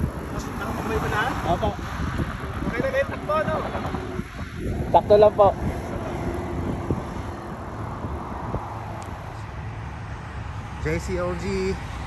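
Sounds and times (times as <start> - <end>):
passing traffic: 0.0 - 12.0
wind: 0.0 - 12.0.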